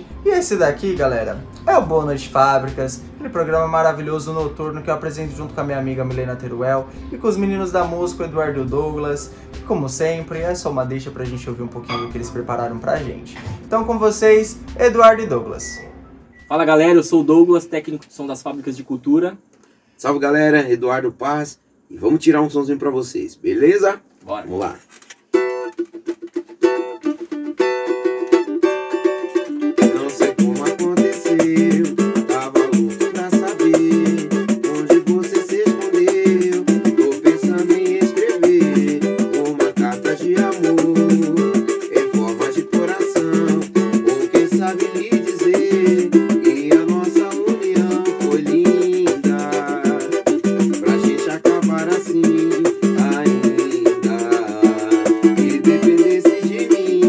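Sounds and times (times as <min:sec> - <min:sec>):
cavaquinho strumming chords: 0:00.0 - 0:17.0, 0:25.3 - 0:57.0
pandeiro jingling beat: 0:00.0 - 0:17.6, 0:25.3 - 0:57.0.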